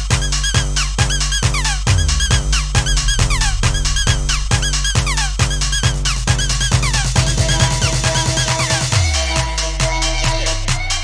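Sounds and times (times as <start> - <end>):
kick drum: 0.0 - 11.0
short high falling notes: 1.9 - 5.4.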